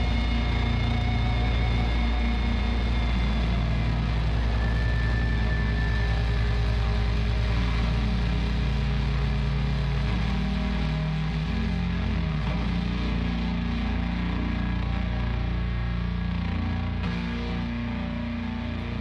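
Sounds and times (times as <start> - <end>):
doom metal song: 0.0 - 19.0.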